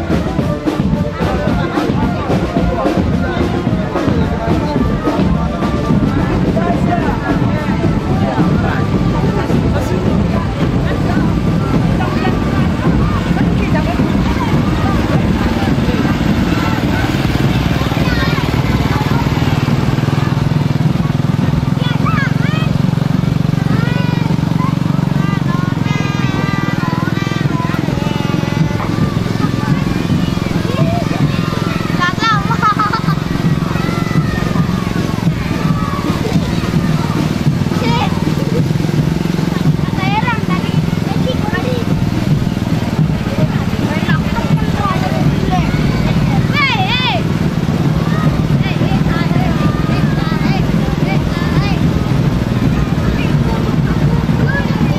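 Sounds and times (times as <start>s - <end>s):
children chattering and calling: 0.0s - 54.9s
small engine running: 0.0s - 54.9s.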